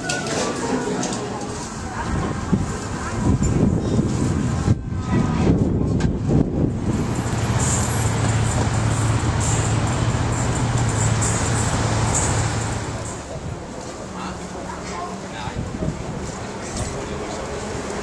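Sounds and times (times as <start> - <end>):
voices: 0.0 - 5.8, 8.2 - 18.0
street noise: 0.0 - 18.0
vehicle engine humming: 1.4 - 18.0.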